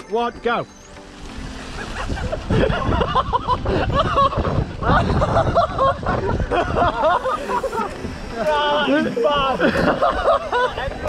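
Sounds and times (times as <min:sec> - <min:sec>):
wind rumble on microphone: 0:01.2 - 0:11.0.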